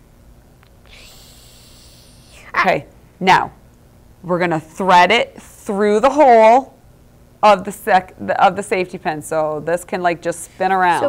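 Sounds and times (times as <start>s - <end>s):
person breathing out: 0.8s - 2.5s.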